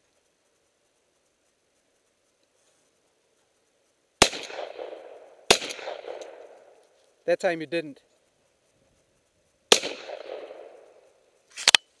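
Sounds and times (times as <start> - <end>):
shotgun blast echoing: 4.2 - 6.7, 9.7 - 11.0.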